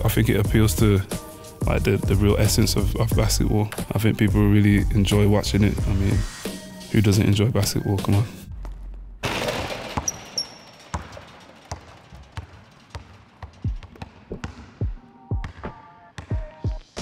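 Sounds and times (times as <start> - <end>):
basketball bouncing on gym floor: 8.6 - 16.8.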